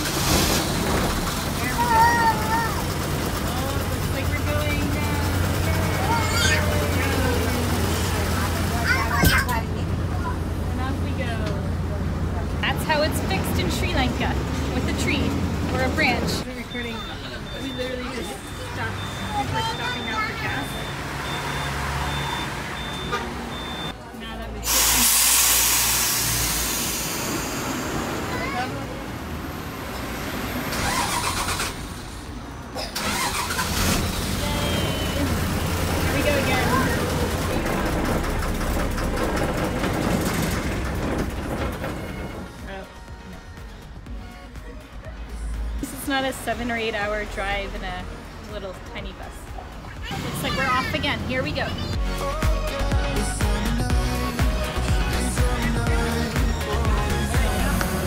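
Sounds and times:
bus engine rumbling: 0.0 - 58.0
voices calling out: 0.8 - 25.2, 26.2 - 58.0
high beeping pulses: 16.4 - 24.0.

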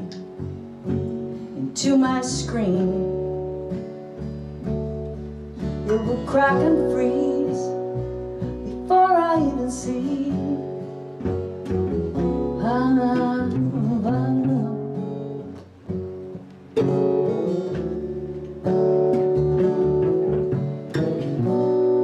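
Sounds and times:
acoustic guitar: 0.0 - 22.0
upright double bass: 0.0 - 22.0
woman singing: 1.6 - 3.3, 5.8 - 7.9, 8.6 - 10.8, 12.5 - 15.4.

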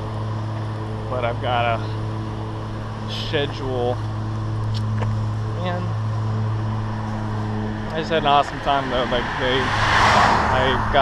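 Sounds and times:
low mechanical hum: 0.0 - 9.7.

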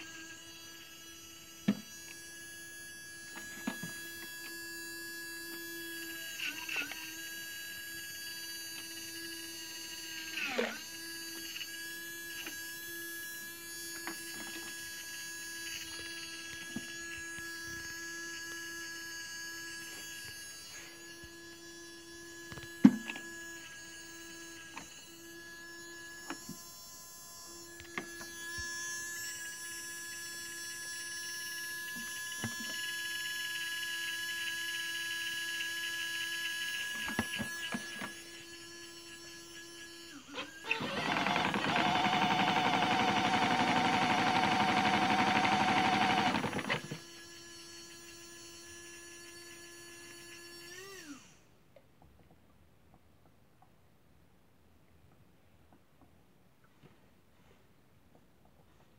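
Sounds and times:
toy washing machine motor humming: 0.0 - 51.5.

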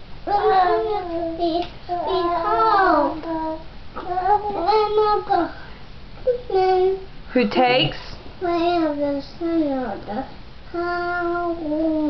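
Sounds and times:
child chanting sing-song: 0.2 - 5.6, 8.4 - 12.0.

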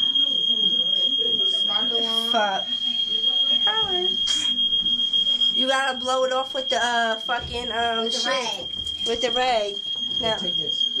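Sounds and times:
smoke alarm tone: 0.0 - 11.0.

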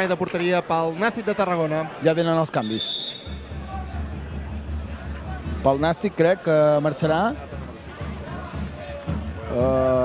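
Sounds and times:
football ground ambience: 0.0 - 10.0.

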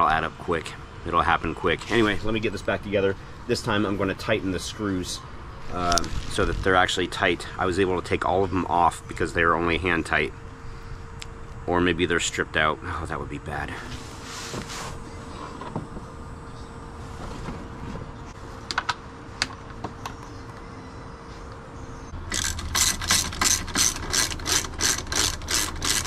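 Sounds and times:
hand ratchet clicking: 22.3 - 26.0.

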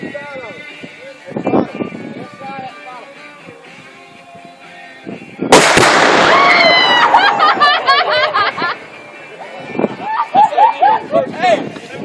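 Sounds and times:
loud explosion blast: 5.5 - 8.0.

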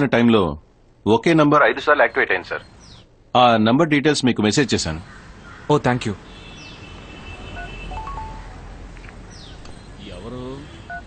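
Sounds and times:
phone keypad beeps: 7.6 - 8.5.

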